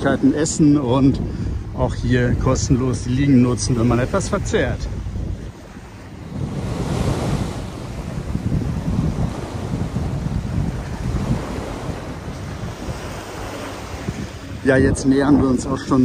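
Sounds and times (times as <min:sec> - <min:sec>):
surf washing onto beach: 0:00.0 - 0:16.0
wind buffeting microphone: 0:00.0 - 0:16.0.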